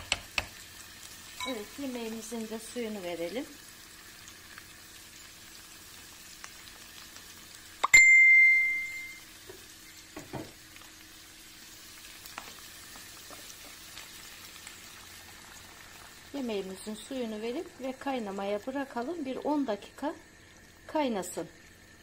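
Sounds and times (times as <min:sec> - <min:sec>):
vegetables sizzling in a frying pan: 0:00.0 - 0:07.8, 0:08.5 - 0:22.0
sharp metallic ding: 0:07.8 - 0:09.2.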